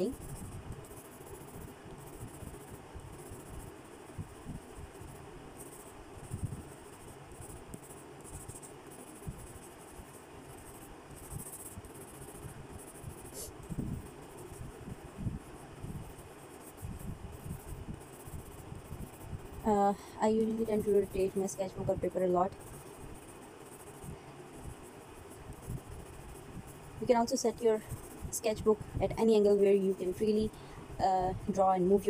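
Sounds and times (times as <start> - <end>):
pencil scratching on paper: 0.0 - 32.0.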